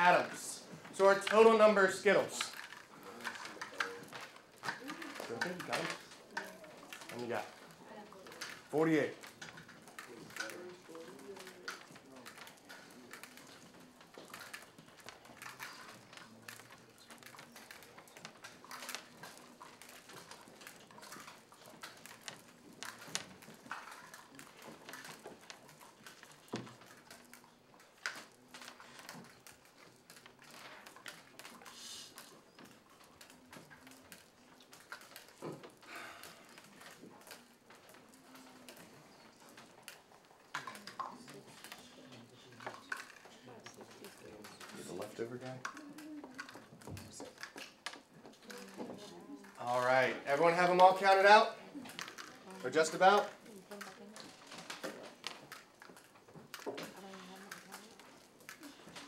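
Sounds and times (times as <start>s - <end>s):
candy clicking on desks: 0.0s - 59.0s.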